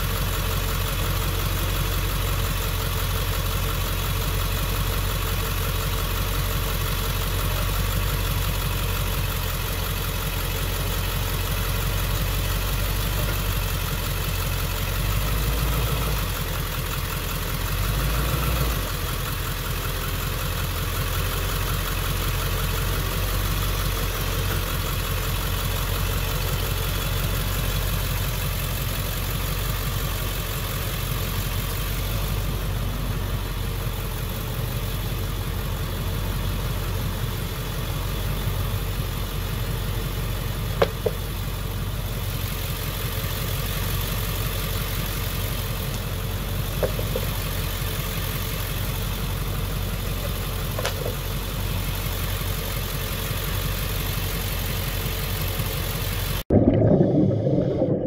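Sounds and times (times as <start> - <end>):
vehicle engine idling: 0.0 - 56.5.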